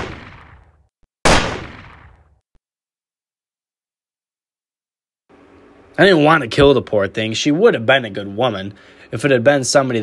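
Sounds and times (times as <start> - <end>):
gunshots with echo: 0.0 - 0.7, 1.3 - 2.3.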